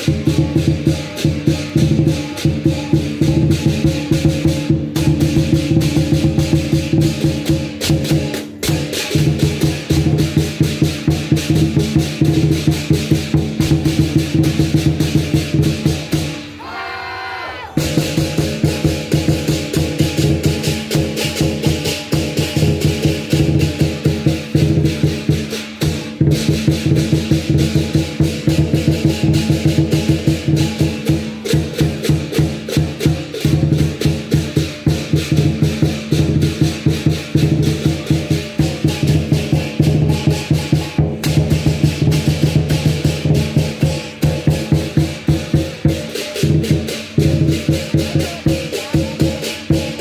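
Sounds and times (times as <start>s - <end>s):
cymbals clashing: 0.0s - 16.6s, 17.8s - 50.0s
large drum rapid strikes: 0.0s - 16.6s, 17.8s - 50.0s.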